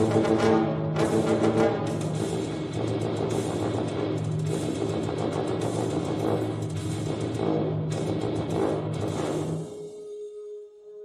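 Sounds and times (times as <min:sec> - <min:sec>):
tuba low notes: 0:00.0 - 0:04.6.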